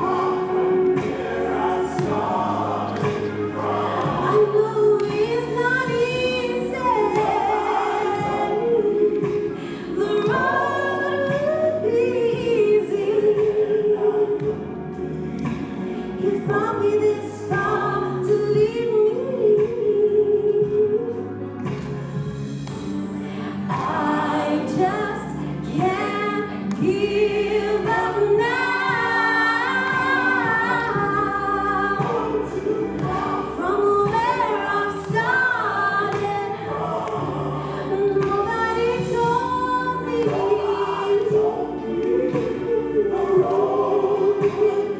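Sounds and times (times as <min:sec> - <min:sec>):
instrumental accompaniment: 0:00.0 - 0:44.9
woman singing into a microphone: 0:04.1 - 0:14.6, 0:16.2 - 0:21.3, 0:23.6 - 0:44.9.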